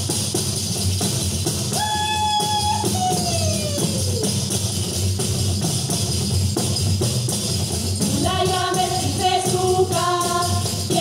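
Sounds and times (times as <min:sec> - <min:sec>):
tambourines and frame drums: 0:00.0 - 0:11.0.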